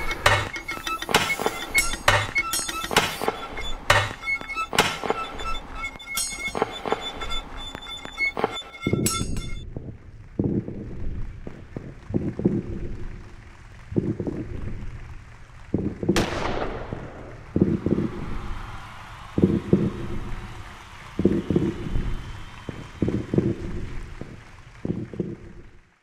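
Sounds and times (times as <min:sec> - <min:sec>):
stadium crowd cheering: 0:00.0 - 0:09.6, 0:11.1 - 0:26.0.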